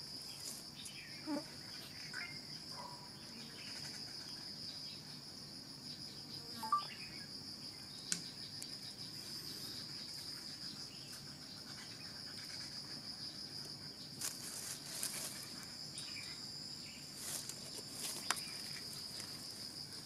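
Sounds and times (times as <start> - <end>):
insect chorus chirring: 0.0 - 20.0.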